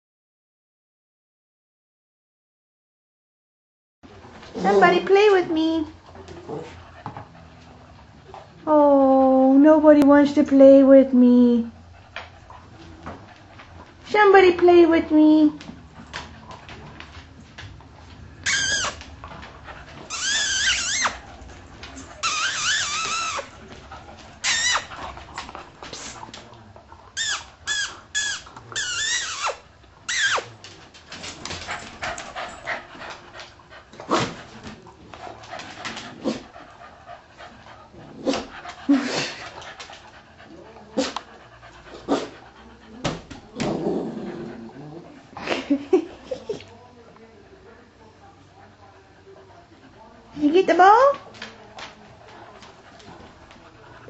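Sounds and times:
dog whining: 18.4s - 19.0s, 20.1s - 21.3s, 22.2s - 23.6s, 24.4s - 25.0s, 27.2s - 30.6s.

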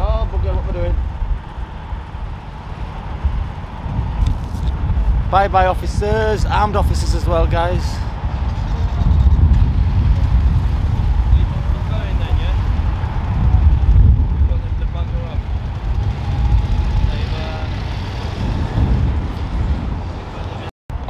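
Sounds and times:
motorcycle engines running: 0.0s - 20.7s
street traffic: 0.0s - 21.0s.

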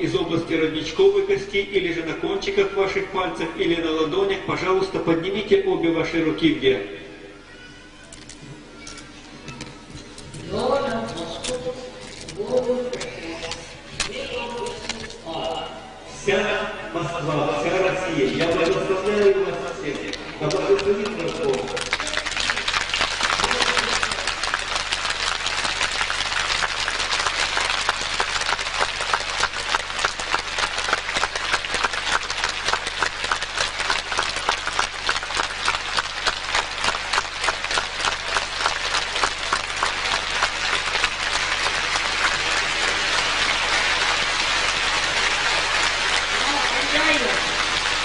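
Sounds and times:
large audience applauding: 17.5s - 48.0s.

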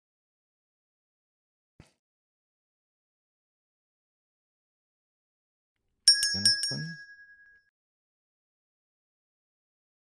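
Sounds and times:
bright bell ding: 6.1s - 7.7s.

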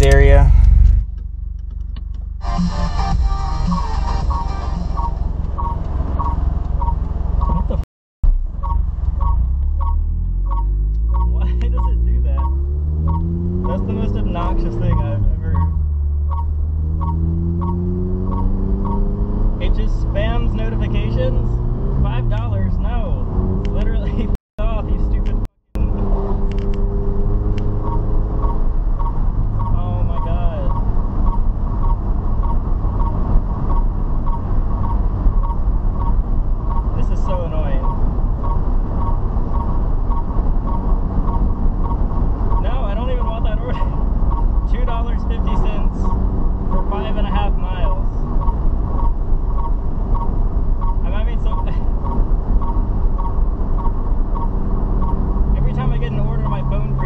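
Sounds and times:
car engine revving while driving: 0.0s - 57.0s.

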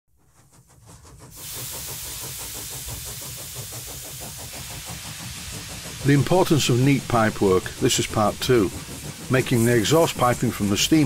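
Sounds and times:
model steam engine exhaust beat: 0.2s - 11.0s
steam hissing: 0.2s - 11.0s.

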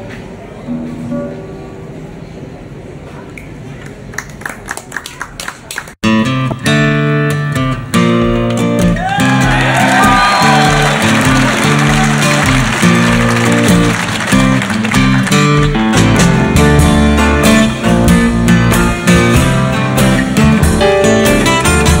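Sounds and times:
loud guitar music track: 6.0s - 22.0s
acoustic guitar played note by note: 6.1s - 9.0s.

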